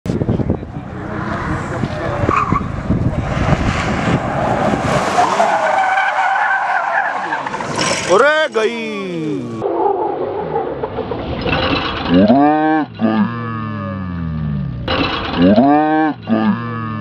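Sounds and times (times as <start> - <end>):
tyres skidding and squealing: 0.7 - 13.9.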